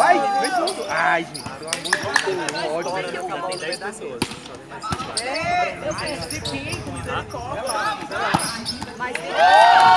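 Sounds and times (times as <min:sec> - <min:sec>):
voices of players and onlookers: 0:00.0 - 0:09.9.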